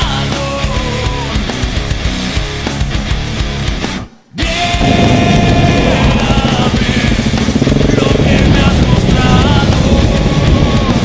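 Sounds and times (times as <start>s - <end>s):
heavy rock music: 0.0s - 11.0s
single-cylinder motorcycle engine: 4.8s - 11.0s.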